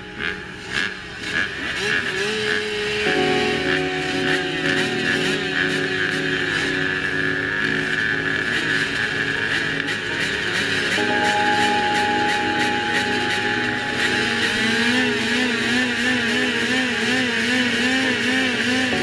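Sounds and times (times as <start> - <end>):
motocross bikes revving: 0.0 - 19.0.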